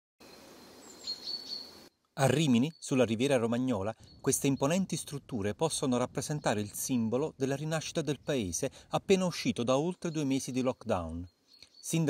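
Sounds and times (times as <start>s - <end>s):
bird chirping: 0.2s - 12.0s.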